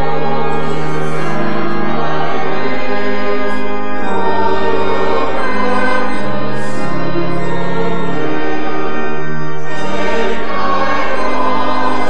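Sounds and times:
congregation and choir singing hymn: 0:00.0 - 0:12.0
organ chords: 0:00.0 - 0:12.0.

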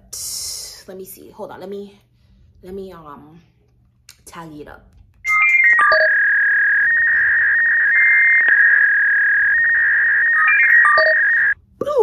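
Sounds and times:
high electronic tone: 0:05.3 - 0:11.6.

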